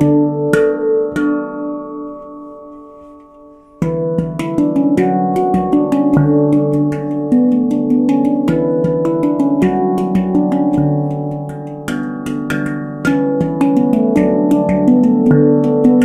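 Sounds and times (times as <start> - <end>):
handpan notes played with fingers: 0.0 - 16.0.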